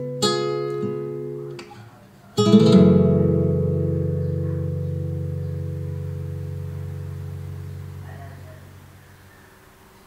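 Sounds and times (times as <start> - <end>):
strummed acoustic guitar chord: 0.0 - 8.9.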